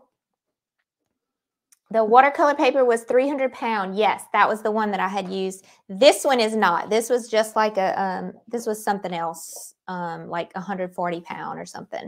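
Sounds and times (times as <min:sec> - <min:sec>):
woman speaking: 0:01.8 - 0:12.0.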